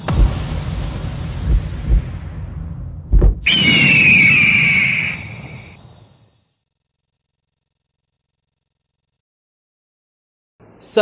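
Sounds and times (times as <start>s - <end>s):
deep whoosh: 0.0s - 6.1s
low rumble: 0.0s - 6.2s
eagle cry screech: 3.5s - 5.8s.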